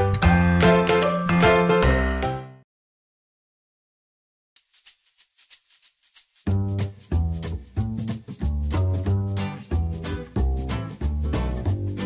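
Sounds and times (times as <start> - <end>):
chiming background music: 0.1 - 2.5.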